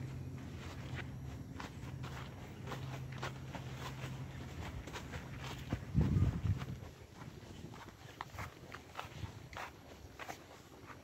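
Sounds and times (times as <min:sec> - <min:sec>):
horse hooves crunching leaves: 0:00.0 - 0:11.0.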